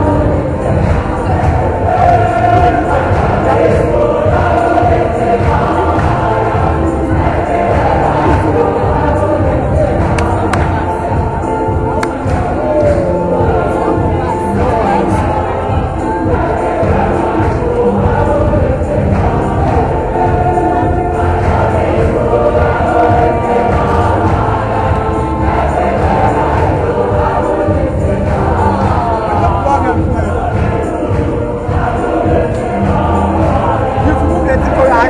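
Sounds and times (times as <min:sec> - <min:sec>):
choir singing a hymn: 0:00.0 - 0:35.0.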